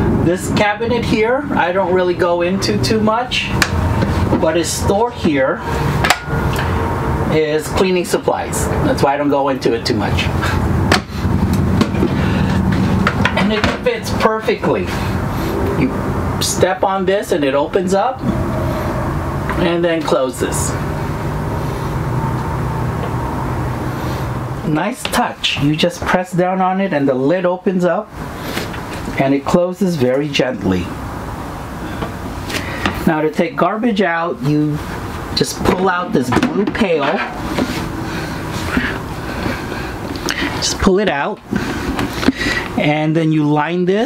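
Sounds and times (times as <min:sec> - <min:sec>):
low mechanical hum: 0:00.0 - 0:44.0
steady background noise: 0:00.0 - 0:44.0.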